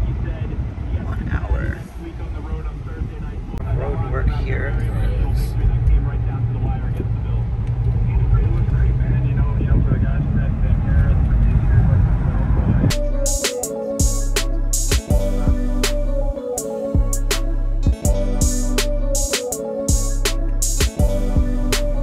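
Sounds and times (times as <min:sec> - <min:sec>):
car cabin road and engine rumble: 0:00.0 - 0:13.2.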